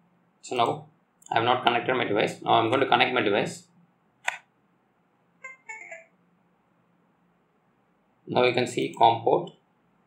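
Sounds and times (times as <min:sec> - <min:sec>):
sharp click: 0:04.2 - 0:04.5.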